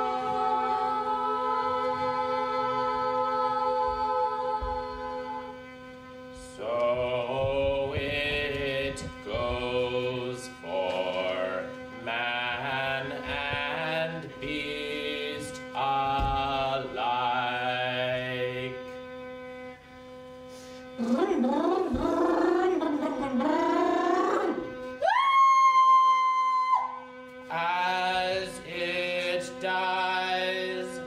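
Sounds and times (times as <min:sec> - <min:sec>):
steady drone: 0:20.5 - 0:25.0.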